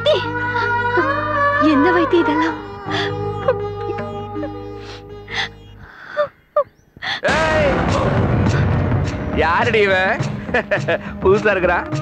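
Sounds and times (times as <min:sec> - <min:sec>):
background music: 0:00.0 - 0:06.0, 0:07.1 - 0:12.0
woman sobbing: 0:00.0 - 0:07.3.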